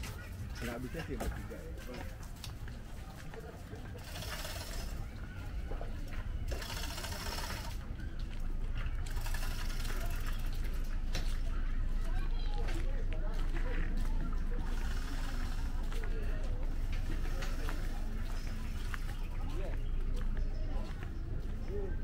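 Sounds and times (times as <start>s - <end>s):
indistinct background voices: 0.0s - 22.0s.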